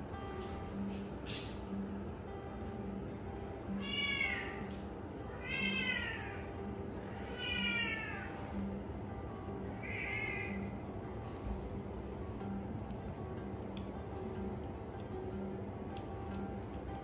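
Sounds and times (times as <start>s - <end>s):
background music with steady beat: 0.0s - 4.0s
kitten meowing: 3.8s - 4.7s, 5.4s - 6.5s, 7.3s - 8.4s.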